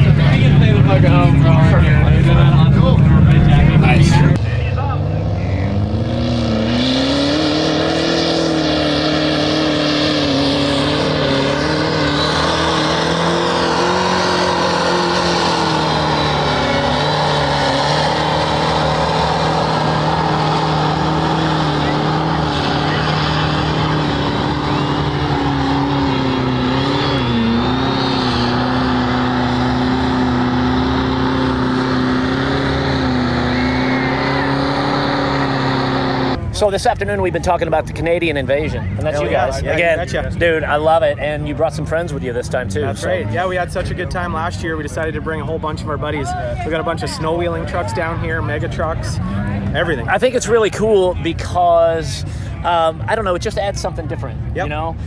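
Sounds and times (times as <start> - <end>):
diesel engine revving: 0.0 - 55.0
tyres churning through mud: 5.0 - 36.8.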